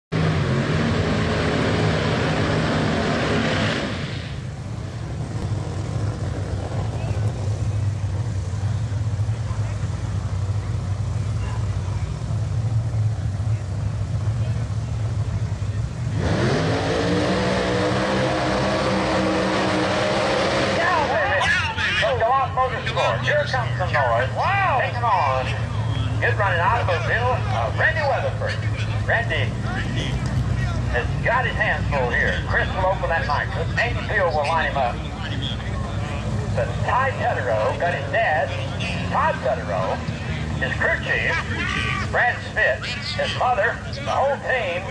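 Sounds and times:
race car engines revving: 0:00.1 - 0:44.9
announcer's voice: 0:20.7 - 0:44.9.

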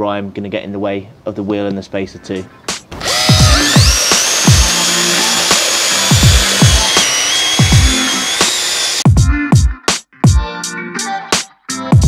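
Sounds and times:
cordless drill wire brush whine: 0:03.0 - 0:09.0.

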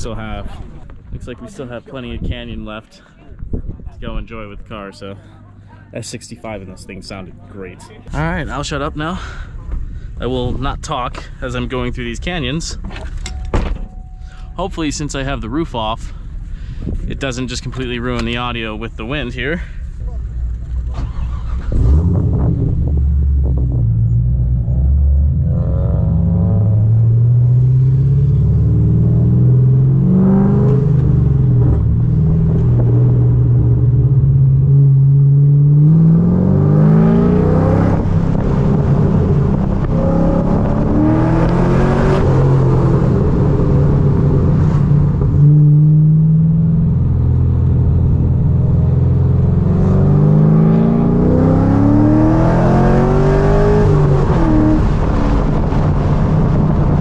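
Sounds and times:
car engine revving: 0:20.3 - 0:57.0.

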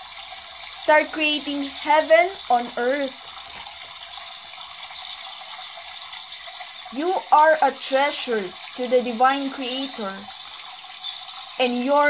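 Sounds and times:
rushing water hiss: 0:00.0 - 0:12.0.

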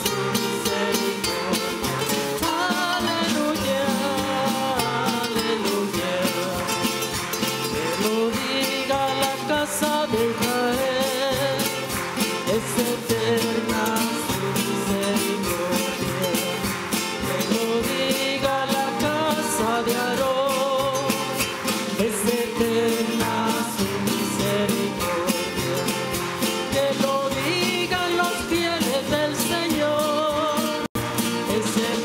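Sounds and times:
voices singing a hymn: 0:00.0 - 0:06.7
steady percussion beat: 0:00.0 - 0:32.0
strummed guitars: 0:00.0 - 0:32.0.

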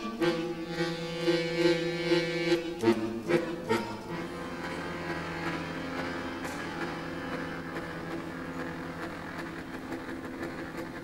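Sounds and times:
accordion playing sustained chords: 0:00.0 - 0:11.0.

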